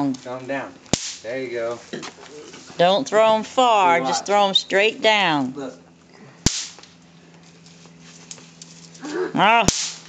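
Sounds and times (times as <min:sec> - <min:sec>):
snap pop cracking: 0:00.8 - 0:01.3, 0:06.4 - 0:06.9, 0:09.7 - 0:10.0.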